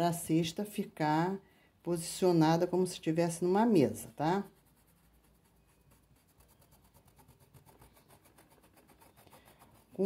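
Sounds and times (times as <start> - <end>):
paintbrush rubbing on cloth: 2.6 - 10.0.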